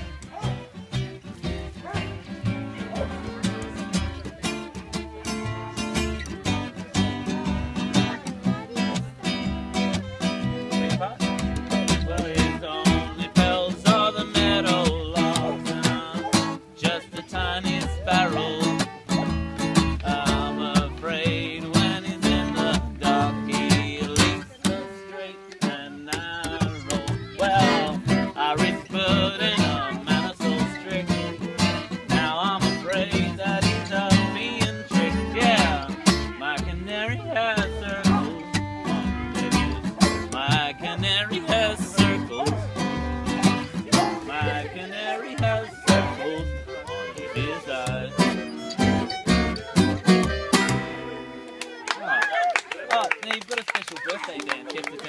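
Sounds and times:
upright double bass: 0.0s - 51.8s
man singing: 0.0s - 51.9s
strummed acoustic guitar: 0.0s - 51.9s
button accordion: 30.8s - 51.8s.

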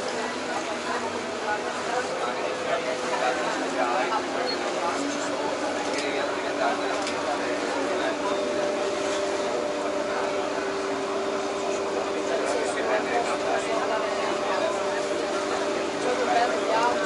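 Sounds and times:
boat engine humming: 0.0s - 17.0s
passengers chattering: 0.0s - 17.0s.

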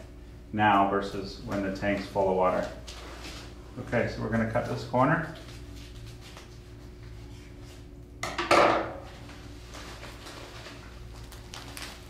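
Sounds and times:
steady low hum: 0.0s - 12.0s
plastic bag rustling: 9.2s - 12.0s.

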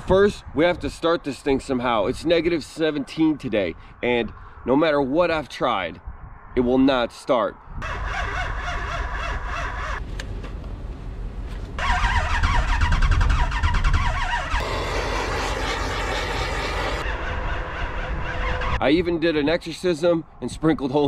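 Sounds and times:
diesel engine cranking: 7.8s - 18.6s.

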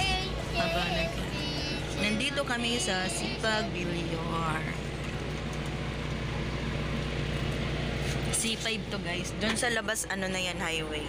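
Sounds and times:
car engine drone: 0.0s - 11.0s
road noise inside car: 0.0s - 11.0s.

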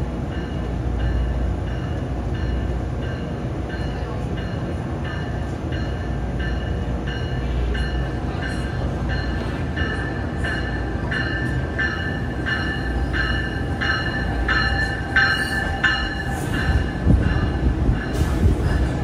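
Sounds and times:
train wheel and motor rumble: 0.0s - 19.0s.

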